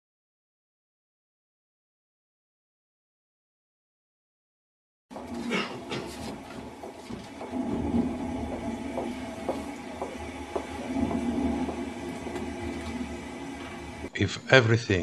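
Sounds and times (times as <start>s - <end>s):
low rumbling electronic drone: 5.1s - 14.5s.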